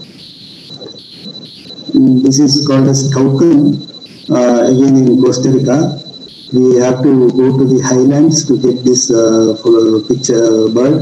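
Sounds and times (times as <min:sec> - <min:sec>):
steady high-pitched whine: 0:00.0 - 0:11.0.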